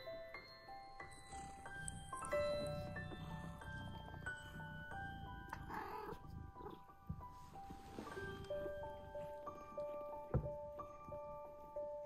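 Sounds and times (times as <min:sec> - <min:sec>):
soft chiming music: 0:00.0 - 0:12.0.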